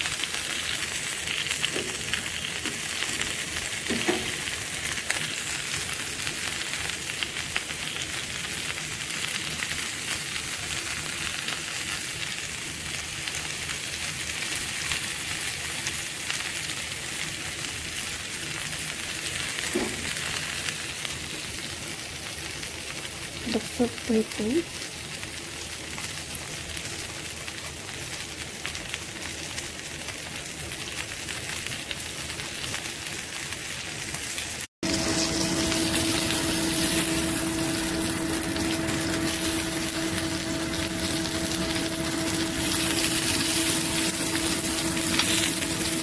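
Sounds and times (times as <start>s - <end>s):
kebabs sizzling on grill pan: 0.0s - 46.0s.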